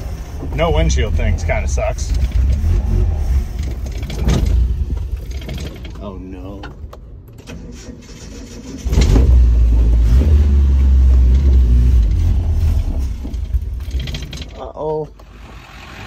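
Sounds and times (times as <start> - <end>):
starter cranking engine: 2.0 - 6.0, 7.4 - 9.4.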